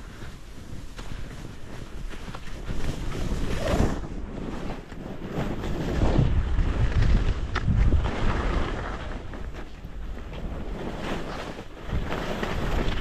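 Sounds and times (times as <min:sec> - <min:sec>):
skis hissing through snow: 0:00.0 - 0:06.9
wind rumble on microphone: 0:00.0 - 0:13.0.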